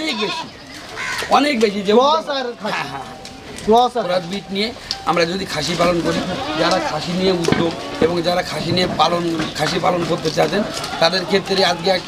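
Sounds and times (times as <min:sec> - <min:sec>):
birds calling: 0:00.0 - 0:12.0
men talking: 0:00.0 - 0:12.0.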